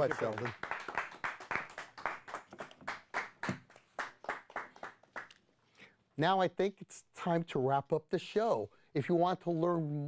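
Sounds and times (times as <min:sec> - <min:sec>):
small audience applauding: 0:00.0 - 0:05.4.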